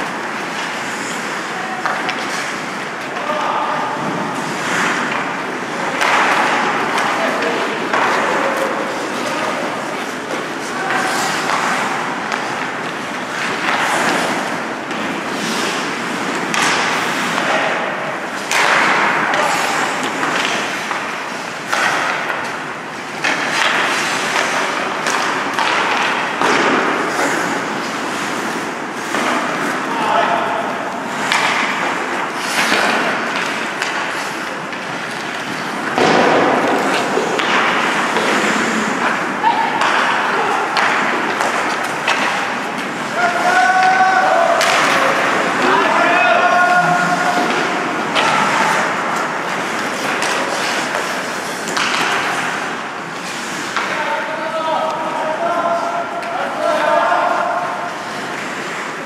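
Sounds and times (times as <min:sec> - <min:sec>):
pucks and bodies hitting boards: 0:00.0 - 0:59.0
skates scraping on ice: 0:00.0 - 0:59.0
players calling out: 0:23.3 - 0:51.3.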